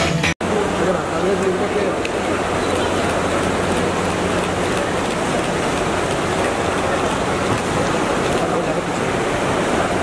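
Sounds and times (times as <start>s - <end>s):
crowd and hall noise: 0.0s - 10.0s.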